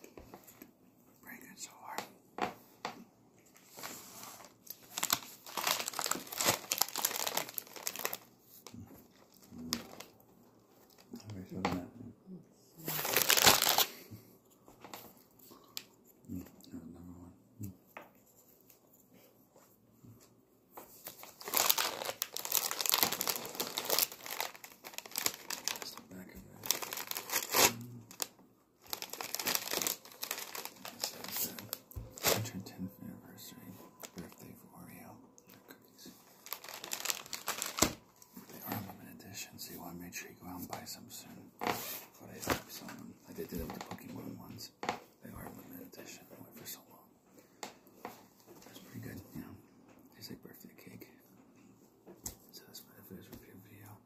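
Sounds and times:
plastic packaging crinkling: 0:04.4 - 0:10.2, 0:12.9 - 0:14.0, 0:21.0 - 0:32.6, 0:36.2 - 0:38.8.

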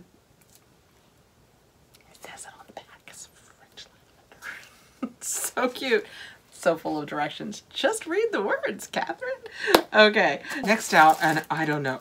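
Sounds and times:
woman whispering: 0:02.0 - 0:04.4.

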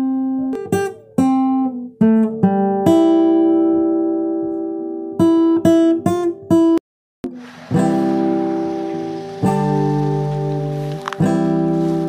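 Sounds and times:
acoustic guitar chord strummed: 0:00.0 - 0:12.0.

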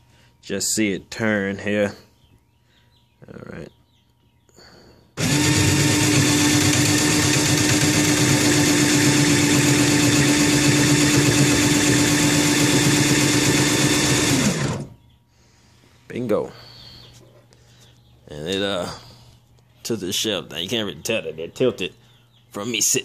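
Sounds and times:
drill motor humming: 0:05.2 - 0:15.0.

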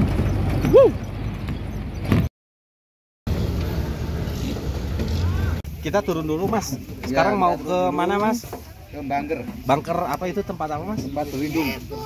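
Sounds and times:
jeep engine running: 0:03.3 - 0:07.0.

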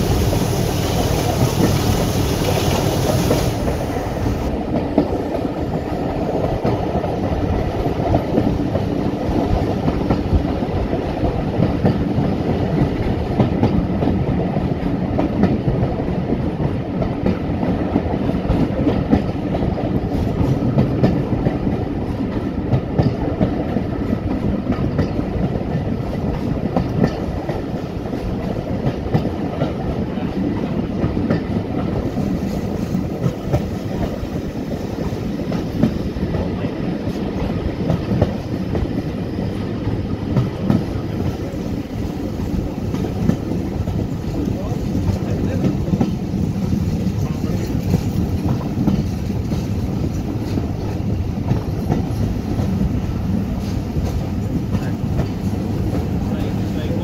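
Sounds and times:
diesel locomotive rumble: 0:00.0 - 0:57.0.

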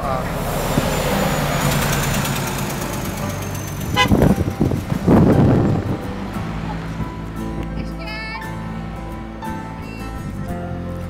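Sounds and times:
engine noise surges: 0:00.0 - 0:10.6
vehicle engine running: 0:00.0 - 0:11.0
horn toot: 0:03.4 - 0:06.2.

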